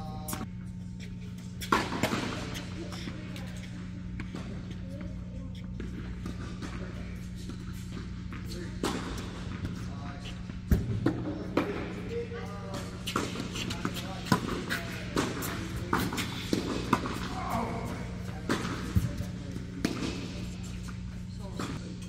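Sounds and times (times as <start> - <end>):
low building hum: 0.0 - 22.0
tennis ball bouncing: 12.7 - 21.0.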